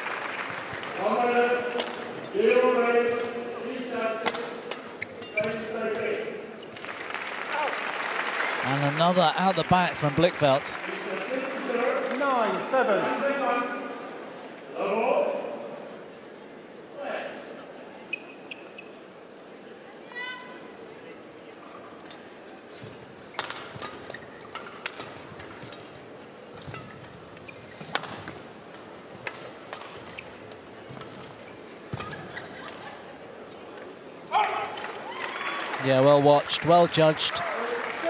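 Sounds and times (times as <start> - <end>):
crowd cheering and applause: 0.0 - 1.0, 6.8 - 11.6, 34.4 - 38.0
rackets hitting shuttlecock: 1.7 - 2.1, 4.2 - 5.2, 23.4 - 30.2
shoe squeaks on court: 2.3 - 2.8, 4.9 - 5.7, 18.1 - 19.1, 26.7 - 27.9.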